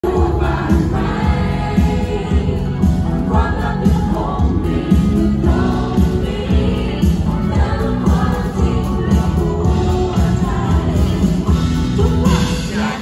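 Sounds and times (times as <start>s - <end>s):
drum and bass beat: 0.0s - 13.0s
live band playing: 0.0s - 13.0s
woman singing into a microphone: 0.0s - 13.0s.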